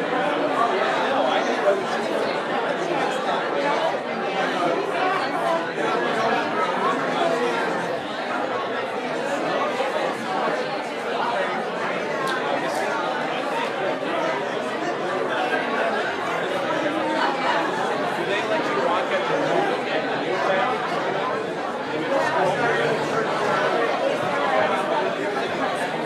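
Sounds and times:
hubbub of people chatting: 0.0 - 26.0.

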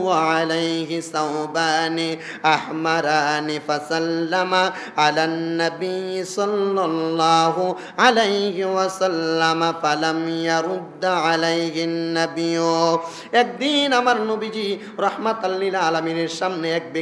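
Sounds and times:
man chanting melodically: 0.0 - 17.0.

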